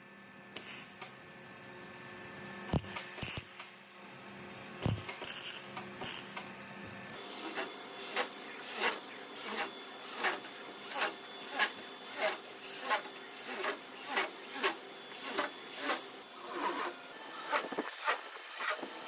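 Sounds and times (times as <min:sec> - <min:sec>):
electric drill cutting sheet metal: 0:04.8 - 0:06.4, 0:07.2 - 0:19.0.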